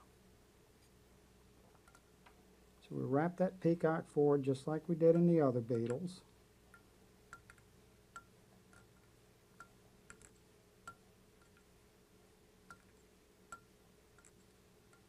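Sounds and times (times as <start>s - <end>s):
faint steady hum: 0.0s - 15.0s
faint irregular ticks: 1.7s - 2.4s, 5.1s - 11.8s, 12.7s - 15.0s.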